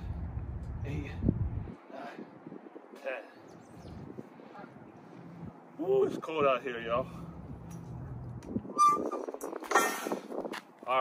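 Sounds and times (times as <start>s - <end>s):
low outdoor rumble: 0.0s - 2.9s, 3.5s - 8.8s.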